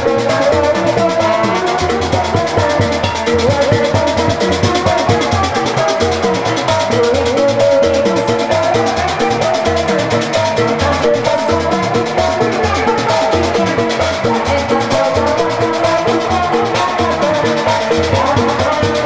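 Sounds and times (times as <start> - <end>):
steady drum beat: 0.0 - 19.0
sustained melodic line: 0.5 - 6.6.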